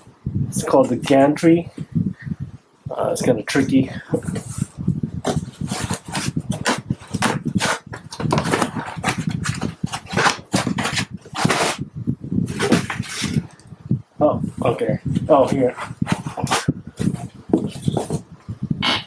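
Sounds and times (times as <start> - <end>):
packing foam scraping cardboard: 4.2 - 11.8, 12.5 - 13.4, 15.7 - 18.2.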